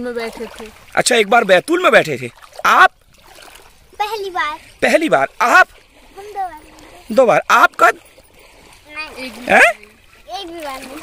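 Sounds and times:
water lapping around boat: 0.0s - 11.0s.

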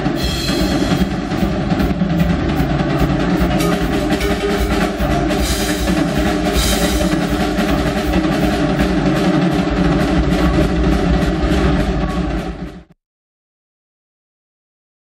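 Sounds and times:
cymbal crashes: 0.0s - 12.9s
drum kit solo: 0.0s - 12.9s.

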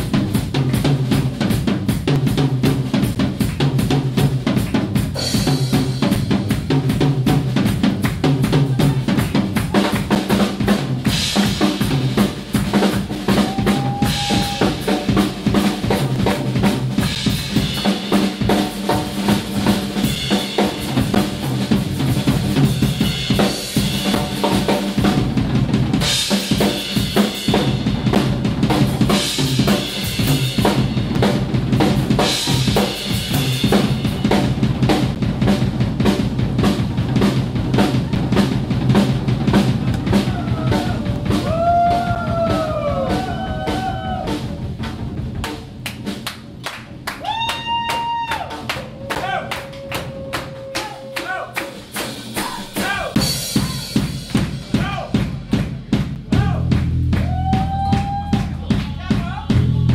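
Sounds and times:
drums in quick busy strokes: 0.0s - 47.0s, 48.2s - 59.9s
bass notes: 0.0s - 47.2s, 52.4s - 59.9s.

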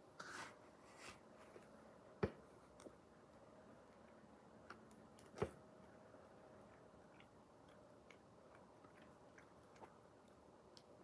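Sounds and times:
boy chewing: 6.6s - 11.0s.

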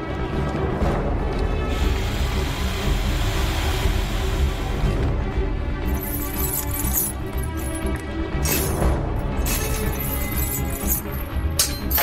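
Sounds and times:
tense film score: 0.0s - 12.0s.

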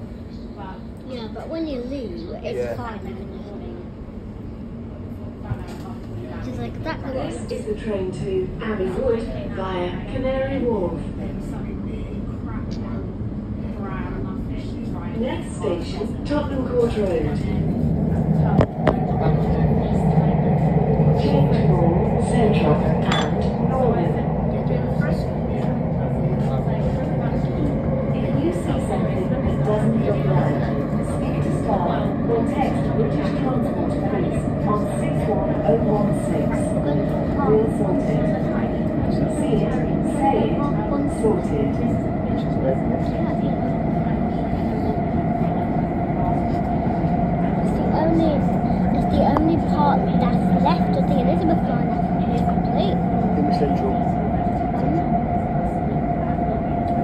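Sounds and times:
train rumbling in tunnel: 0.0s - 57.0s.

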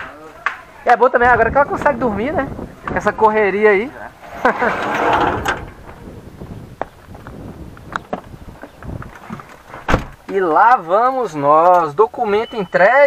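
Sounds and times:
burst of laughter: 4.4s - 5.1s.

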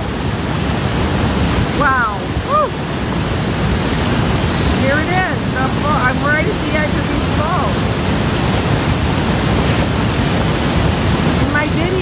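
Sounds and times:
waterfall rushing onto rocks: 0.0s - 12.0s
wind buffeting microphone: 0.0s - 12.0s.

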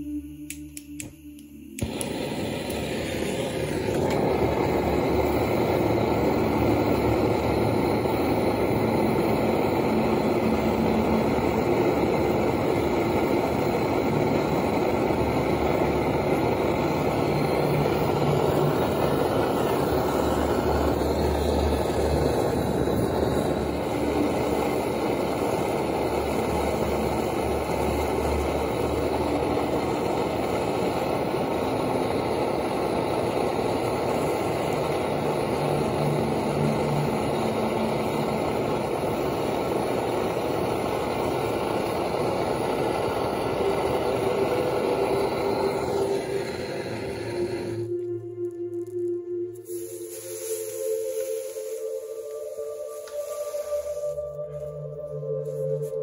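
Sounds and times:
blowtorch flame hissing: 1.8s - 48.0s, 49.6s - 54.4s.

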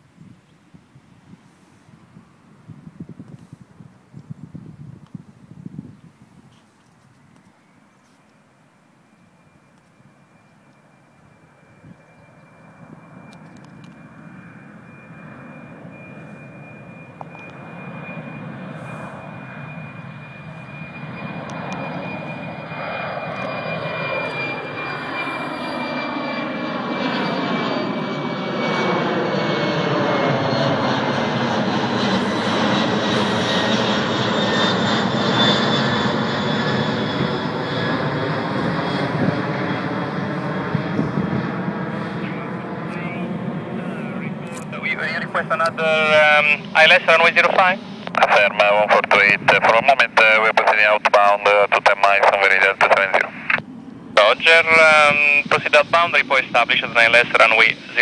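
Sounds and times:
jet flying overhead: 0.0s - 58.0s.

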